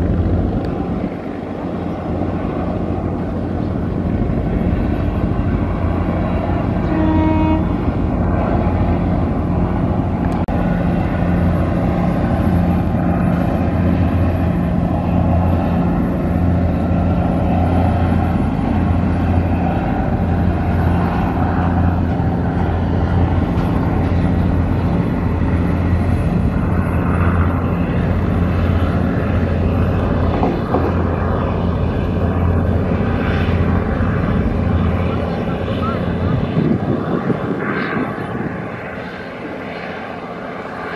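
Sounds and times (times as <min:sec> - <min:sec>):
boat engines droning: 0:00.0 - 0:40.9
bow wave rushing: 0:00.0 - 0:40.9.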